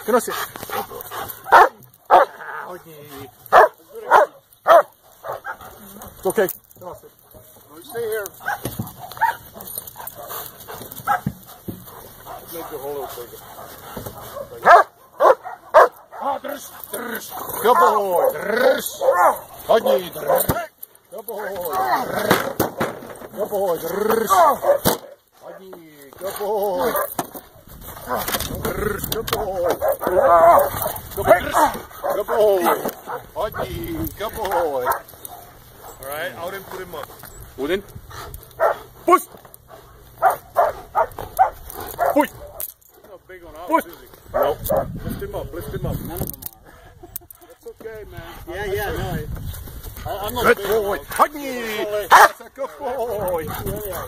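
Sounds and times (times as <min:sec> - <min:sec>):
dog barking: 0:01.4 - 0:02.4, 0:03.5 - 0:05.8, 0:08.4 - 0:16.4, 0:17.2 - 0:20.7, 0:24.3 - 0:25.2, 0:26.8 - 0:27.2, 0:29.6 - 0:33.7, 0:38.6 - 0:38.9, 0:40.2 - 0:42.7, 0:44.3 - 0:44.9, 0:52.1 - 0:52.4.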